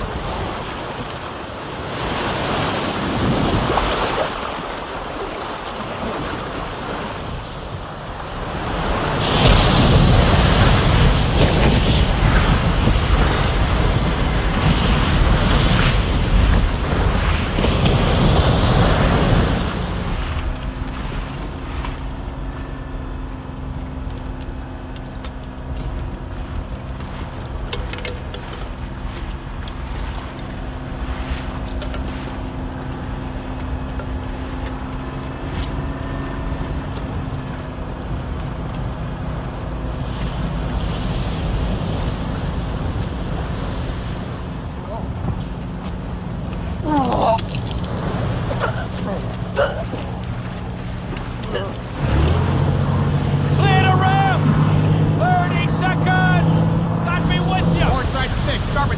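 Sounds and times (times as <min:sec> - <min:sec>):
boat engine drone: 0:00.0 - 0:58.9
waves and spray against hulls: 0:00.0 - 0:58.9.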